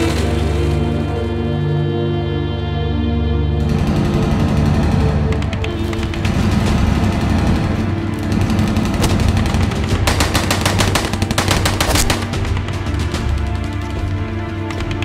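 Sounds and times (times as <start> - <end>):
dramatic film score: 0.0 - 15.0
automatic rifle fire: 6.4 - 12.5.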